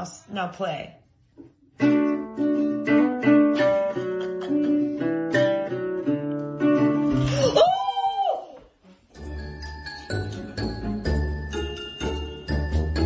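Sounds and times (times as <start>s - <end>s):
acoustic guitar plucked: 1.7s - 7.6s.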